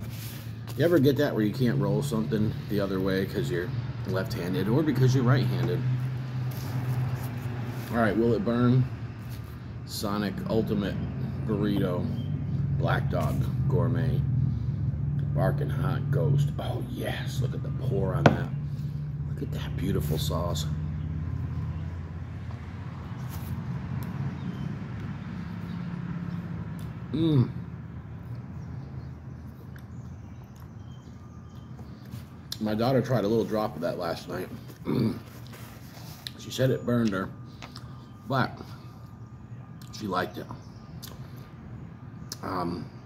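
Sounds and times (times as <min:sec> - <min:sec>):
low engine hum: 0:00.0 - 0:43.0.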